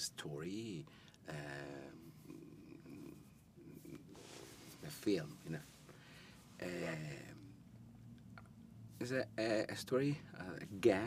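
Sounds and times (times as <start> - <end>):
man murmuring: 1.3 - 5.5, 6.6 - 7.6.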